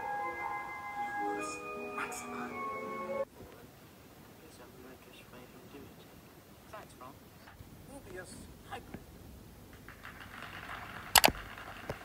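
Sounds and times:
applause through tv speakers: 0:09.7 - 0:12.0.

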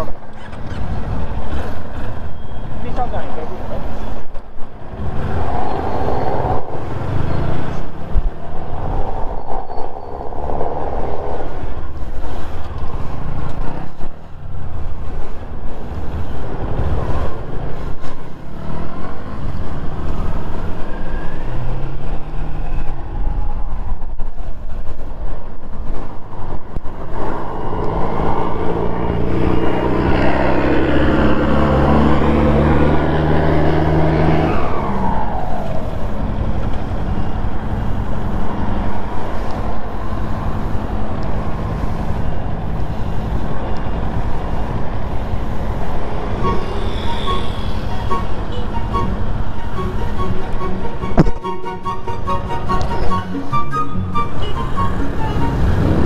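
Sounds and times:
wind rushing: 0:03.8 - 0:56.0.

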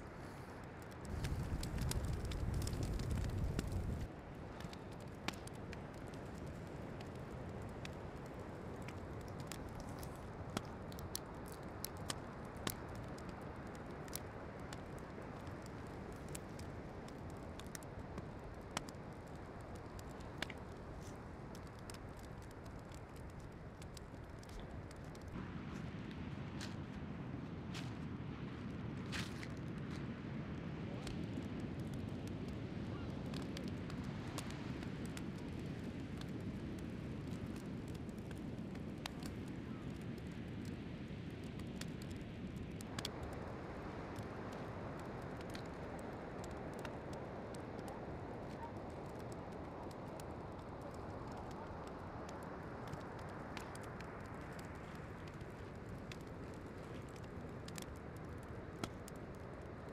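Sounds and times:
campfire crackling and popping: 0:00.0 - 0:59.9.

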